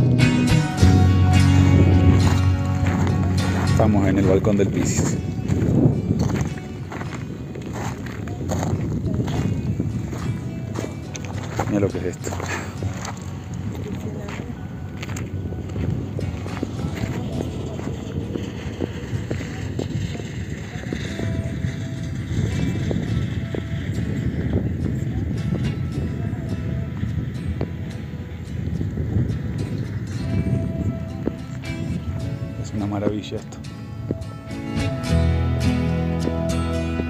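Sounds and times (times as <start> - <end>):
wind buffeting microphone: 0.0 - 37.0.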